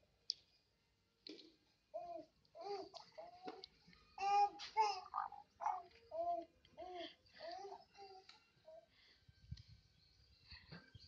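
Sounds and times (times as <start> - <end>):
baby babbling: 1.9 - 3.6, 4.2 - 8.8.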